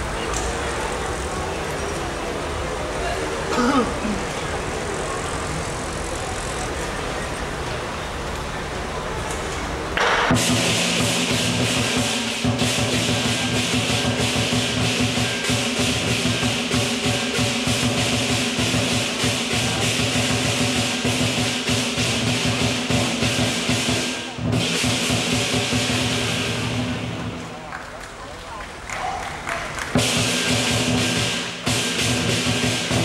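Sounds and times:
clashing cymbals: 10.0s - 27.6s, 29.8s - 33.0s
drum beaten in fast strokes: 10.0s - 27.6s, 29.8s - 33.0s.

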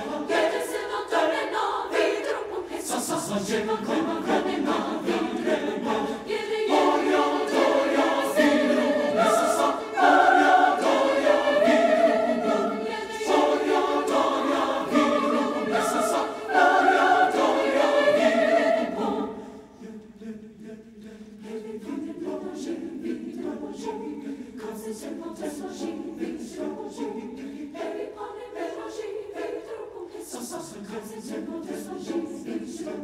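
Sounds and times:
mixed choir singing: 0.0s - 33.0s.

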